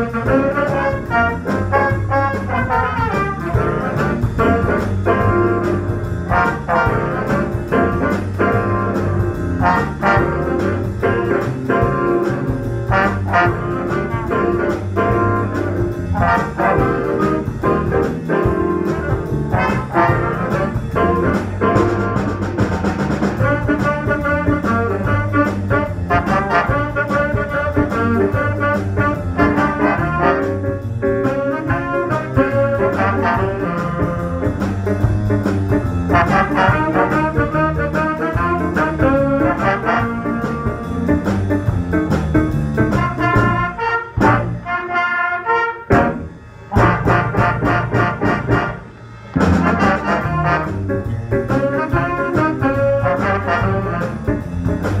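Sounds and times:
drum hits: 0.0s - 44.6s, 45.9s - 55.0s
jazz big band playing swing: 0.0s - 55.0s.

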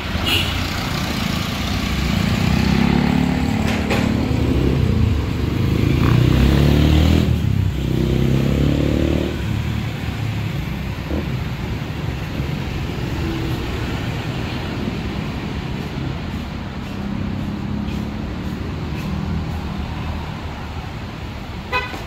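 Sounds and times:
cars passing: 0.0s - 22.0s
motorcycles passing: 0.0s - 22.0s.

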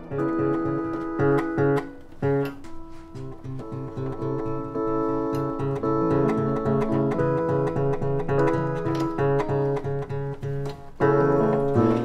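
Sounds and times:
acoustic guitar picking: 0.0s - 12.0s.

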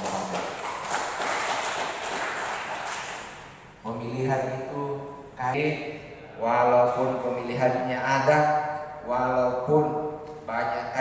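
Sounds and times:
audience applause: 0.0s - 3.2s.

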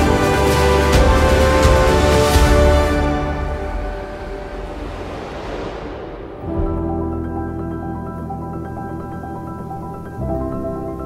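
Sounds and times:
film soundtrack music: 0.0s - 11.0s
rushing noise swell: 0.0s - 11.0s.

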